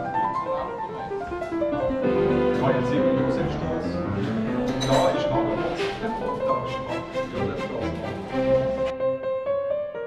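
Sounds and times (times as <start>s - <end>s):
orchestral piano concerto music: 0.0s - 10.0s.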